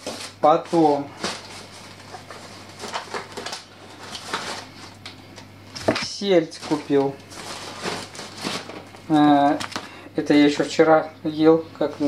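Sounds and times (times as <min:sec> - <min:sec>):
plastic bag rustling: 0:00.0 - 0:05.0, 0:05.7 - 0:09.8
steady low hum: 0:00.0 - 0:12.0.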